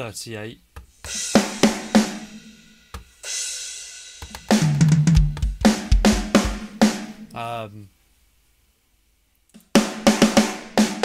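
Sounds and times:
drum hits: 4.2 - 7.2
deep kick drum: 4.6 - 6.6.

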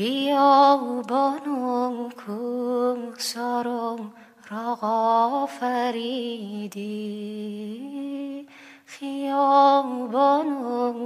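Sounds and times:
breath in: 8.5 - 8.9.

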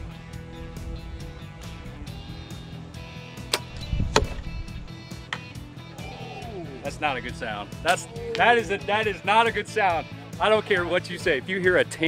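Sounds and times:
background music: 0.0 - 12.0
bow release click and thump: 3.4 - 4.5, 5.2 - 5.6.

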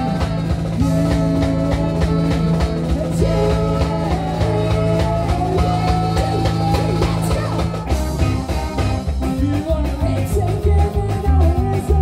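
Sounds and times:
saxophones and trombone: 0.0 - 9.4
drum kit beat: 0.0 - 12.0.

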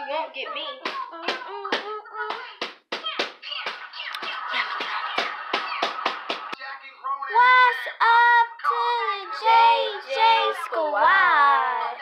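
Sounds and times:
rhythmic hand claps: 0.8 - 6.6
child's voice holding long notes: 7.3 - 12.0.

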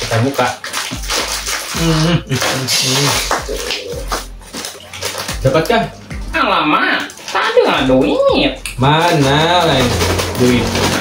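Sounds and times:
plastic snack packet crinkling: 0.0 - 5.4, 8.9 - 11.0
person humming: 1.8 - 4.2.

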